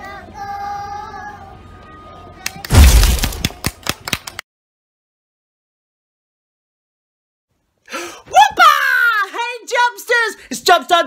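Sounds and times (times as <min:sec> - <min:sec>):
cartoon explosion with crackling: 0:02.7 - 0:03.7.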